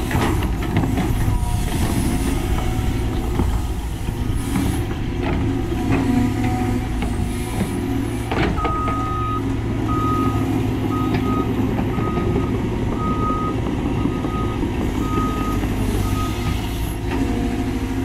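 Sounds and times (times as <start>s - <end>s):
excavator diesel engine running: 0.0s - 18.0s.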